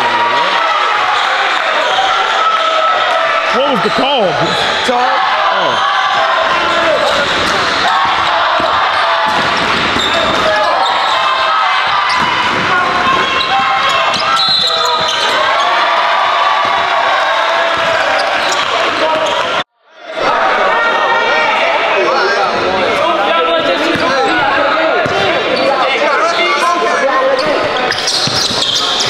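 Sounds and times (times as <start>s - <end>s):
indistinct shouting and talk: 0.0s - 29.0s.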